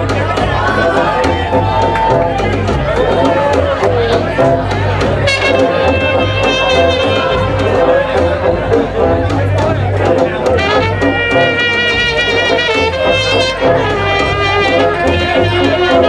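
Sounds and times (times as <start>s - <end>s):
drums: 0.0s - 16.0s
sousaphone bass: 0.0s - 16.0s
trumpets playing melody: 2.9s - 16.0s.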